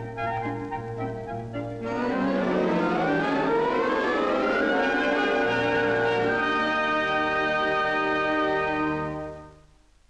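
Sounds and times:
orchestral notes gliding upward: 0.4s - 9.4s
sustained orchestral chord: 1.3s - 9.6s.

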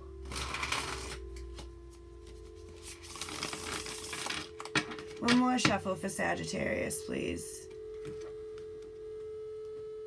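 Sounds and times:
steady low hum: 0.0s - 10.0s
cards being shuffled: 0.3s - 5.4s.

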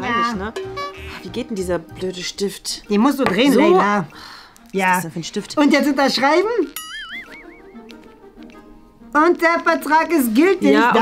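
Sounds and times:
quiet background music: 0.0s - 11.0s
warbling whistle-like sound effect: 6.9s - 7.8s.

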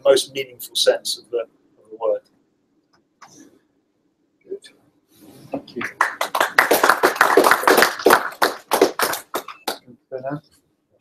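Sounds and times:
audience applauding: 5.7s - 9.8s.

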